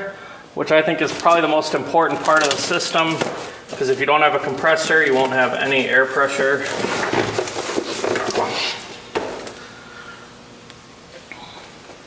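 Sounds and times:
cardboard box rustling and scraping: 2.3s - 8.8s.

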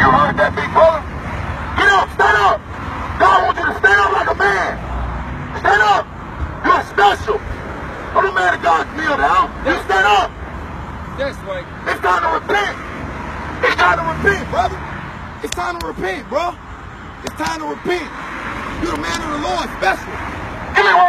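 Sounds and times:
men talking: 0.0s - 21.0s
street traffic rumble: 0.0s - 21.0s.

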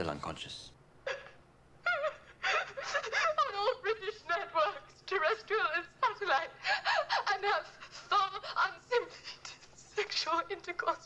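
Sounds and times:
woman sobbing while speaking: 1.0s - 11.0s.

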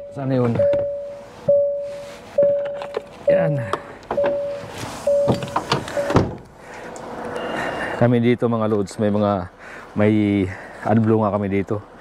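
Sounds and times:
electronic warning chime: 0.0s - 3.6s, 4.2s - 6.2s.

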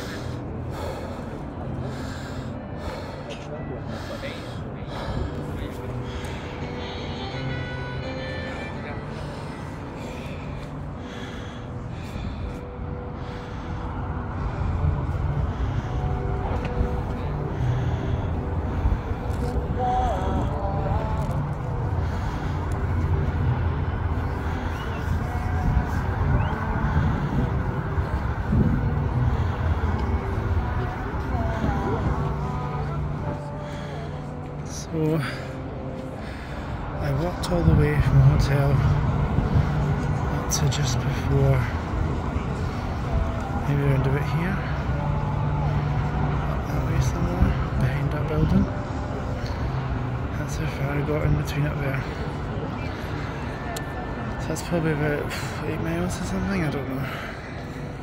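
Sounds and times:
steady low rumble: 0.0s - 58.0s.

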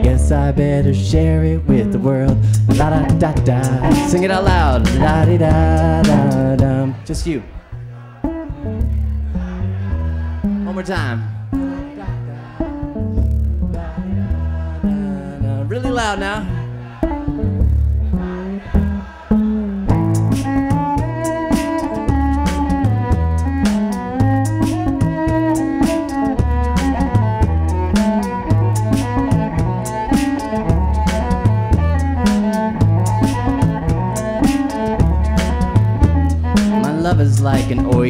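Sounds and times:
bowed cello melody: 0.0s - 7.1s, 8.2s - 38.0s
beatbox rhythm: 0.0s - 7.5s, 12.7s - 38.0s
looped bass line: 0.0s - 38.0s.

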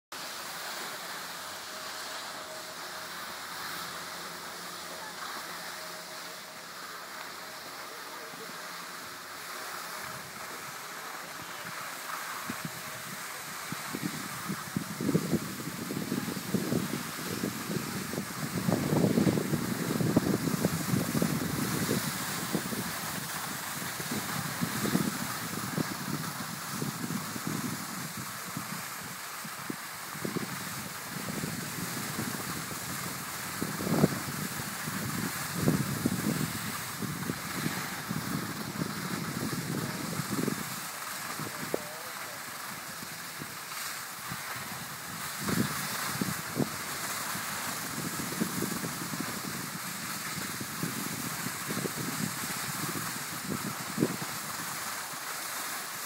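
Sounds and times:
skis sliding on packed snow: 0.1s - 56.0s
wind buffeting microphone: 11.4s - 41.9s, 44.3s - 54.9s.

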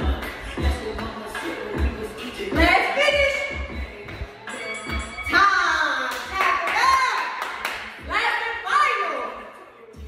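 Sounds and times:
rhythmic clapping: 0.0s - 2.8s, 6.0s - 8.6s.

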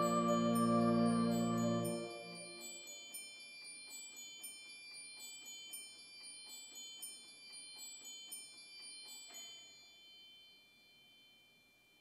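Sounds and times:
high chimes ringing: 0.0s - 11.3s.

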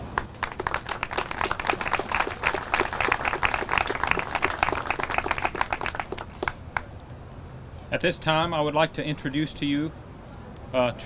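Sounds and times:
crowd applauding: 0.0s - 6.9s.

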